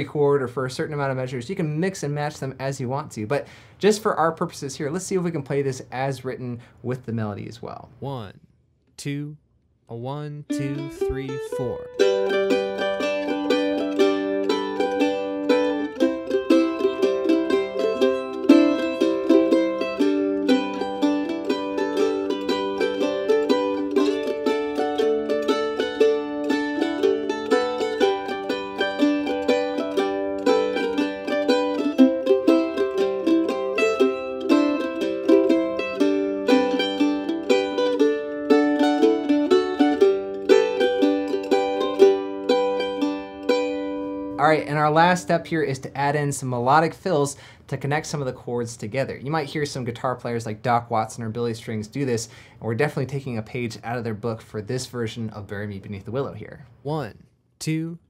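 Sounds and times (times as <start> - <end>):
mandolin strumming: 10.5 - 47.0.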